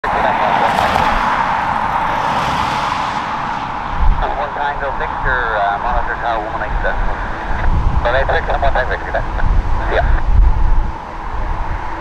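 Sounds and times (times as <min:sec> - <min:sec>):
jet engines hissing: 0:00.0 - 0:12.0.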